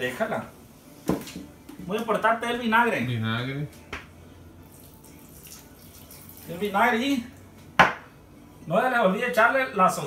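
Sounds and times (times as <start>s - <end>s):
liquid trickling into bowl: 4.6s - 6.6s.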